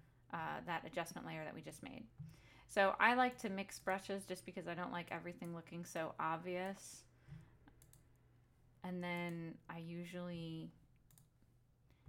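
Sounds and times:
woman speaking: 0.3s - 2.1s, 2.7s - 7.1s, 8.8s - 10.8s.

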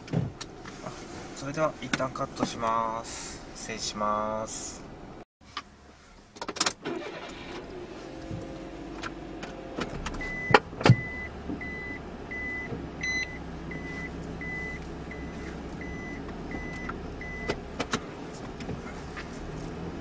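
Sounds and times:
car engine starting and idling: 6.3s - 20.0s
dashboard warning chime: 10.2s - 17.6s.

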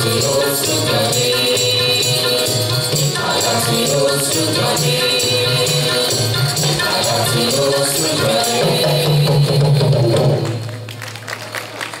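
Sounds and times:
live ensemble held low note: 0.0s - 12.0s
audience clapping: 10.0s - 12.0s.

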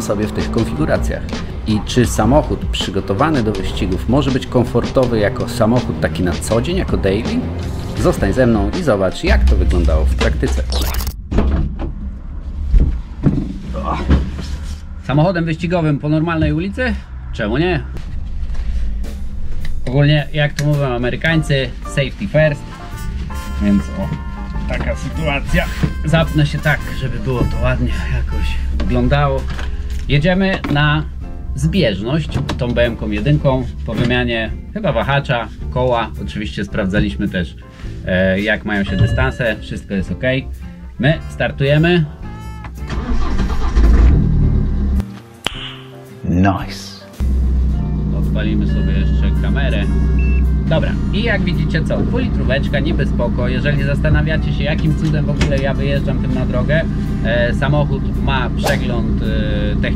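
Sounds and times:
diesel engine starting and running: 0.0s - 22.0s, 42.3s - 45.0s, 47.2s - 59.9s
sharp click: 10.5s - 11.2s
race car engine idling: 47.2s - 59.9s.

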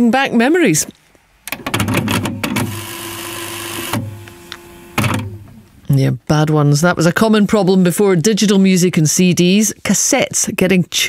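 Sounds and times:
cassette mechanism clicks: 1.5s - 2.8s
hissing whir: 2.4s - 5.6s.

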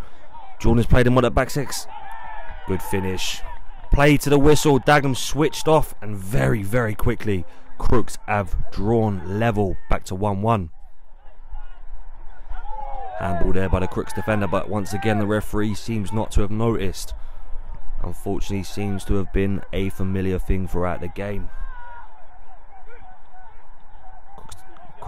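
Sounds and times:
distant shouts of players: 0.0s - 25.0s.

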